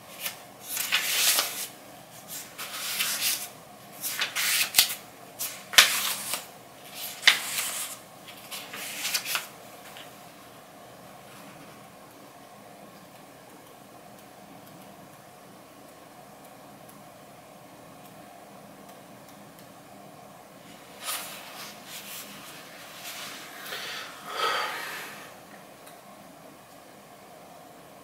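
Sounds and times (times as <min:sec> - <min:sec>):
faint steady hiss: 0:00.0 - 0:28.0
book pages turning: 0:00.1 - 0:10.1, 0:21.0 - 0:23.4.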